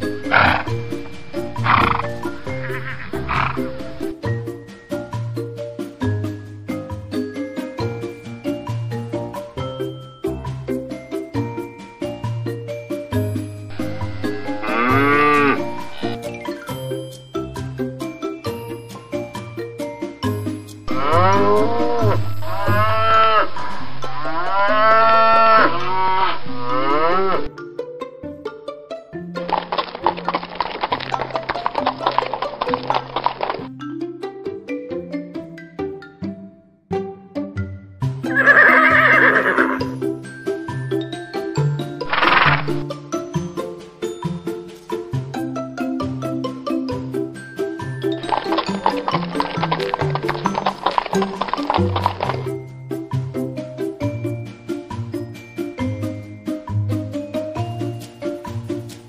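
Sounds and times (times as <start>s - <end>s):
cow mooing: 0.0s - 4.1s, 13.7s - 16.2s, 20.9s - 27.5s, 38.3s - 39.8s
horse whinnying: 0.0s - 4.1s, 13.7s - 16.2s, 20.9s - 27.5s, 38.2s - 40.0s, 42.0s - 42.8s
background music: 0.0s - 59.0s.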